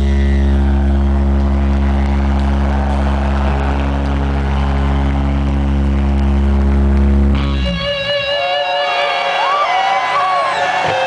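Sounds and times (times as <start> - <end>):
rock band distorted drone: 0.0 - 9.5.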